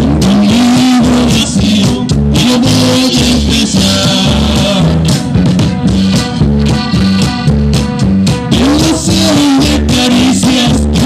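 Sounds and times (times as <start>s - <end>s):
accordion: 0.0s - 11.0s
drums: 0.0s - 11.0s
electric bass: 0.0s - 11.0s
guitar: 0.0s - 11.0s.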